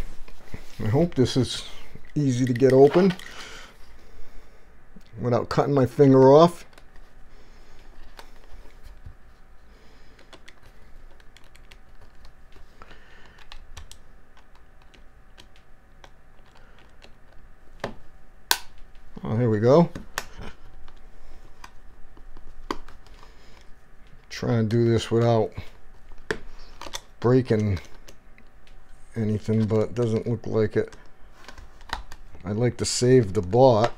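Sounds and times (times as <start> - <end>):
plastic clips snapping: 10.2 - 18.8.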